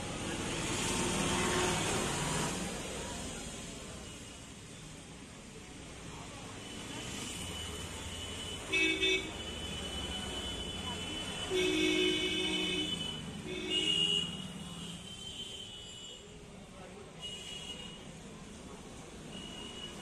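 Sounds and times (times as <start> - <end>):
vehicle horns honking: 8.0 - 16.2.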